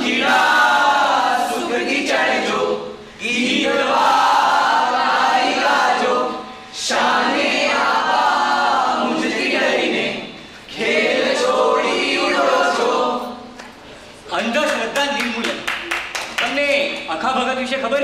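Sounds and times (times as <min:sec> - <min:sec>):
group singing unaccompanied: 0:00.0 - 0:13.6.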